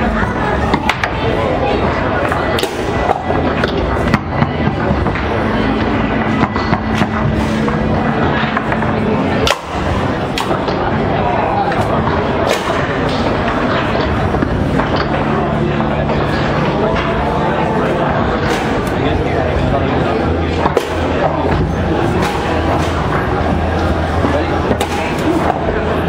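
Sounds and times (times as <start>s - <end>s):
crowd chatter: 0.0s - 26.0s.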